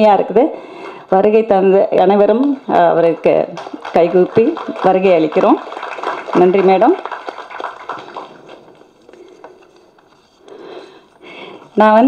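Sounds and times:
audience handclaps: 2.3s - 9.8s.

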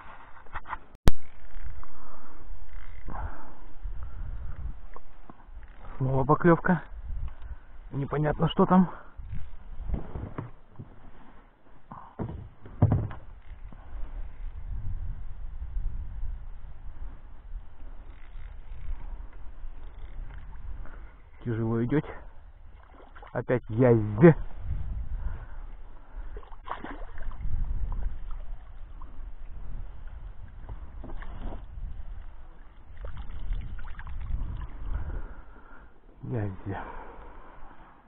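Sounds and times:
low rumble on microphone: 1.1s - 6.1s, 9.2s - 22.8s, 23.6s - 38.0s.

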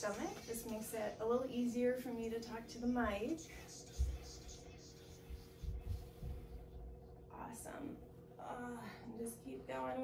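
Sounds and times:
woman whispering: 0.0s - 6.0s
faint steady hum: 0.0s - 10.0s.

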